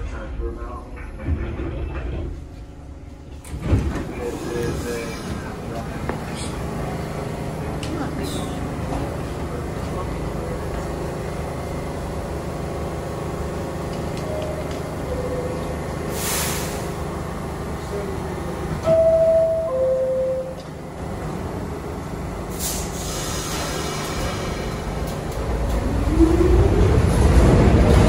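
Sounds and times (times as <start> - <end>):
bustle of passengers: 0.0 - 28.0
stopped train hum: 0.0 - 28.0
subway doors opening bang: 3.2 - 5.5, 18.8 - 21.4, 22.5 - 28.0.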